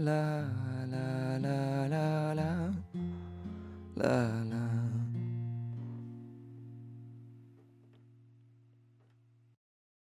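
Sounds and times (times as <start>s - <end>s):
man singing a chant: 0.0s - 2.9s, 4.0s - 5.2s
soft acoustic guitar: 0.0s - 9.6s.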